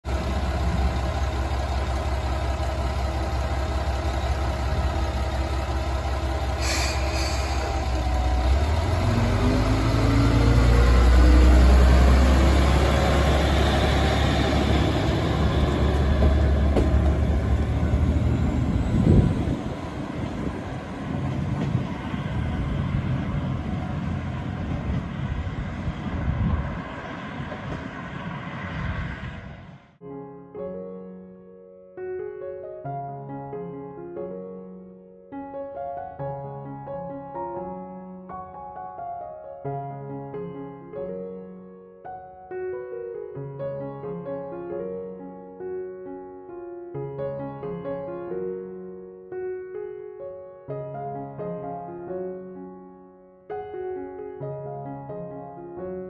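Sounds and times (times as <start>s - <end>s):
diesel railcar engine: 0.0s - 29.8s.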